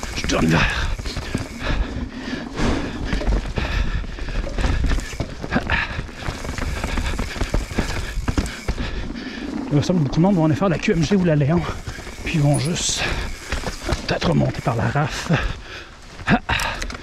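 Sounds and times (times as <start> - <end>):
tyres knocking over roots and rocks: 0.0 - 1.9
bike tyres clattering over planks: 0.0 - 17.0.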